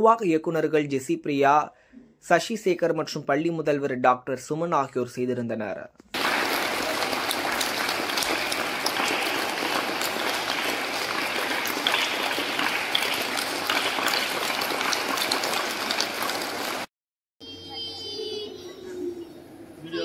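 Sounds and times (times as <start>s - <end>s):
crowd applause: 6.2s - 16.9s.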